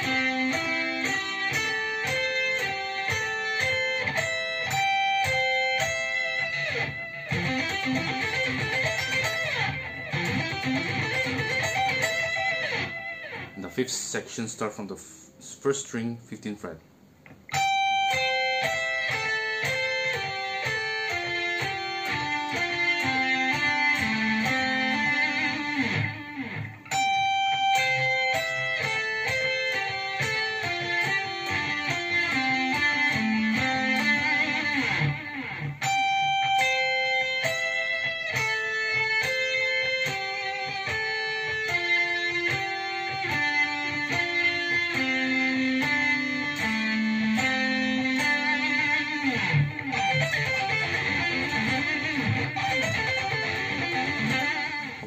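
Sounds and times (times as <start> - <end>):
electric guitar melody: 0.0 - 14.2, 17.2 - 55.0.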